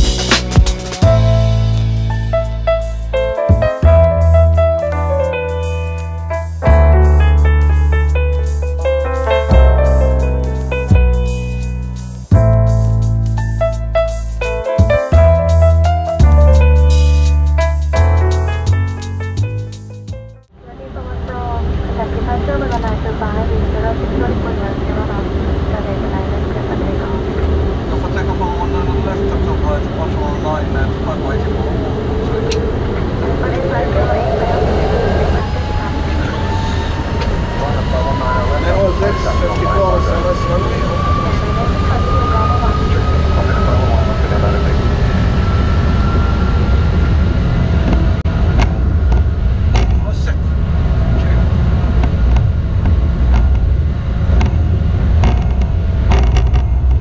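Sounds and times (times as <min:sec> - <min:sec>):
jet engines spooling up: 0:21.0 - 0:57.0.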